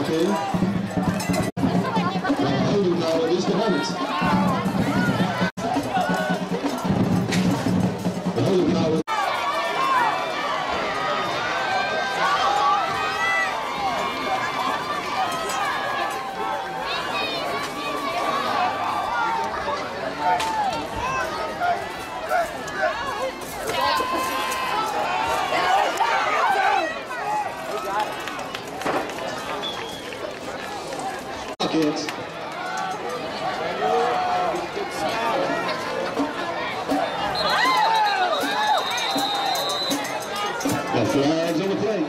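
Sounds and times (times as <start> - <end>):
football crowd shouting and cheering: 0.0 - 42.0
referee's whistle long blast: 37.3 - 40.1.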